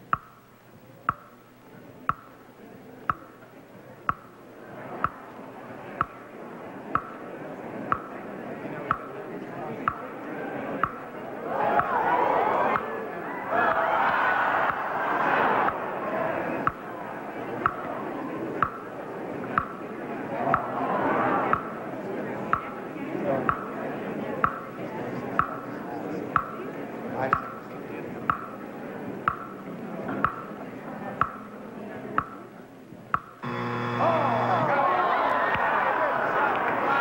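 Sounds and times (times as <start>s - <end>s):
clock ticking: 0.0s - 0.5s, 1.1s - 1.4s, 2.1s - 2.4s, 3.0s - 3.4s, 4.0s - 4.4s, 5.0s - 5.2s, 6.9s - 7.2s, 9.8s - 10.1s, 16.6s - 16.8s, 17.6s - 17.8s, 18.6s - 18.8s, 21.5s - 21.7s, 22.5s - 22.7s, 23.5s - 23.7s, 24.4s - 24.7s, 25.4s - 25.6s, 26.4s - 26.6s, 27.3s - 27.6s, 28.3s - 28.5s, 29.2s - 29.6s, 30.2s - 30.5s, 31.2s - 31.5s
audience voices: 1.6s - 37.0s
buzzer: 33.4s - 34.7s.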